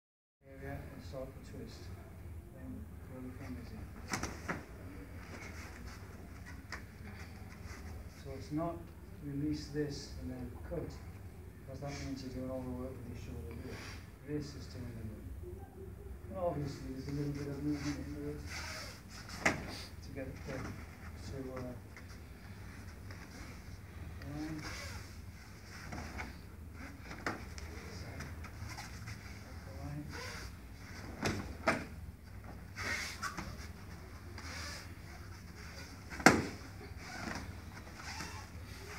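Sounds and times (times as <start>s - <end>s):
low room hum: 0.4s - 38.9s.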